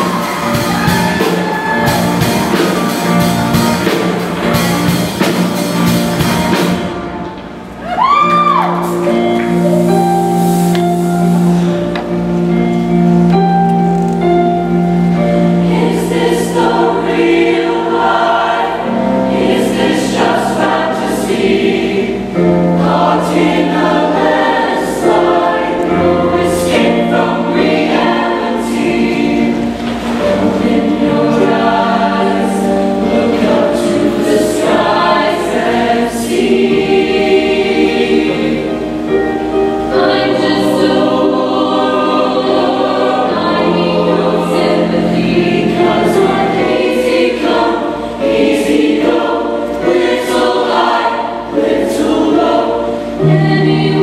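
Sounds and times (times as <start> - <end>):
mixed choir singing: 0.0 - 7.7, 14.3 - 54.0.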